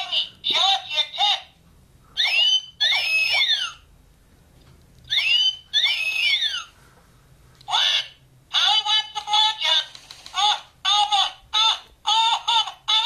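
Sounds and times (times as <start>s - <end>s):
electronic toy squawks: 2.2s - 3.8s, 5.1s - 6.8s, 7.7s - 8.8s.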